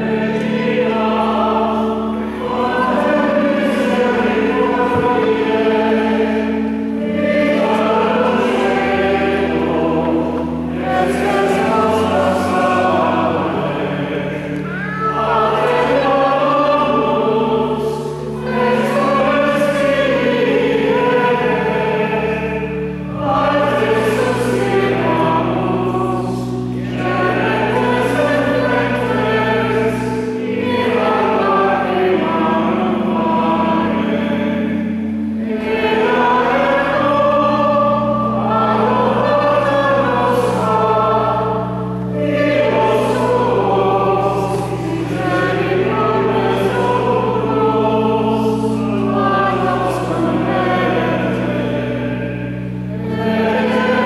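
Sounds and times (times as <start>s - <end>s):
church choir singing: 0.0s - 54.0s.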